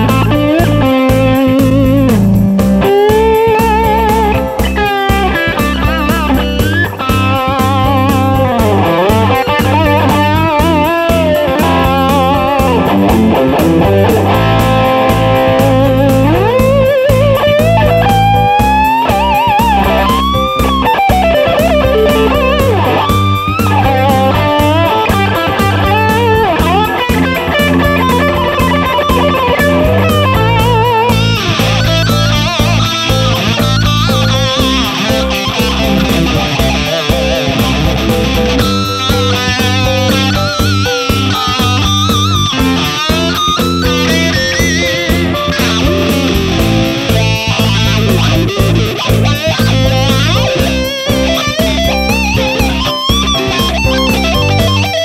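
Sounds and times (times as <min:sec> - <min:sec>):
backing track with bass: 0:00.0 - 0:55.0
electric guitar lead with bends: 0:00.0 - 0:55.0.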